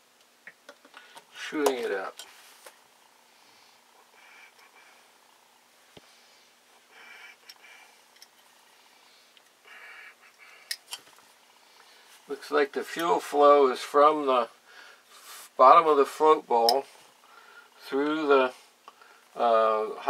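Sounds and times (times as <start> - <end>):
soft rubbing and shuffling: 1.3 - 4.0, 11.0 - 17.2.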